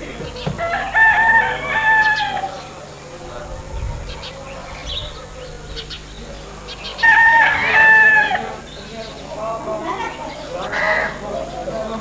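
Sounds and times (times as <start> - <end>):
faint chatter of people: 0.0 - 12.0
rooster crowing: 0.5 - 2.7, 7.0 - 8.7.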